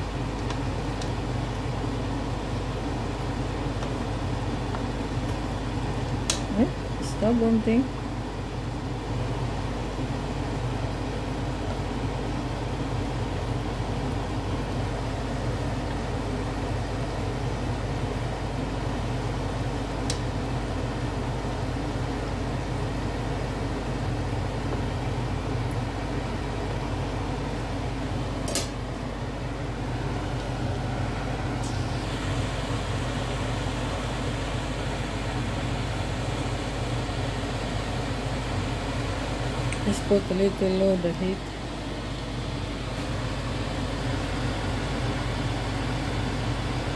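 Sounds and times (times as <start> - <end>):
low even hum: 0.0 - 46.9.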